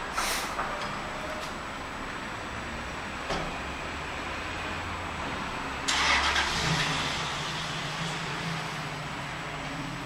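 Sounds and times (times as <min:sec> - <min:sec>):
outdoor background hum: 0:00.0 - 0:10.0
rush of air from sliding door: 0:00.1 - 0:00.6.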